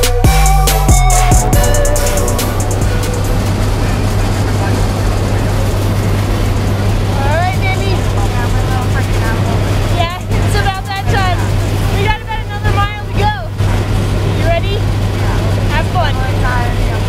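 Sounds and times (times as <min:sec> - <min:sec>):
airplane engines droning: 0:00.0 - 0:17.0.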